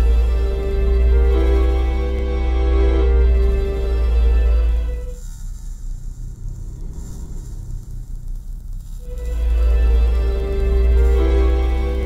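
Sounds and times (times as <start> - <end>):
faint airy hiss: 0.0 - 12.0
low rumbling drone: 0.0 - 12.0.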